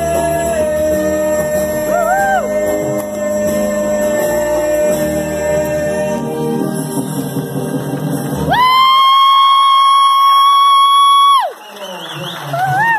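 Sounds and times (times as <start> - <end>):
song with singing: 0.0 - 8.5.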